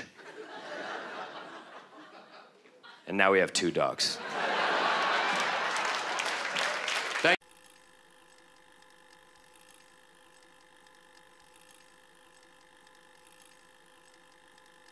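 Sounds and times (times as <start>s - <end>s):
faint steady hum: 0.0s - 14.9s
audience laughing and applauding: 0.2s - 3.0s, 4.2s - 7.4s.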